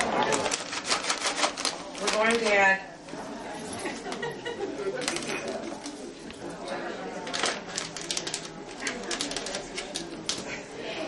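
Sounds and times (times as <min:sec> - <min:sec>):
faint murmur of voices: 0:00.0 - 0:11.0.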